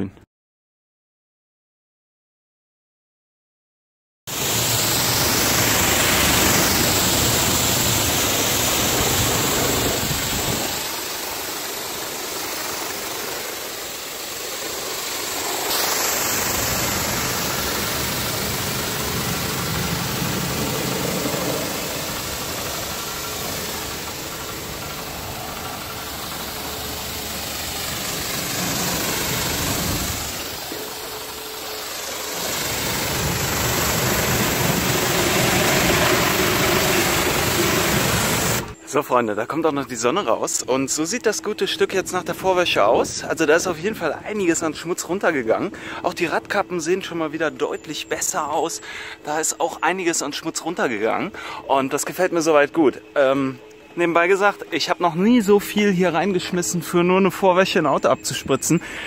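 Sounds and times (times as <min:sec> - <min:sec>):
pressure washer pump humming: 0:04.3 - 0:38.8, 0:51.2 - 0:59.0
water jet spraying hiss: 0:04.3 - 0:38.8.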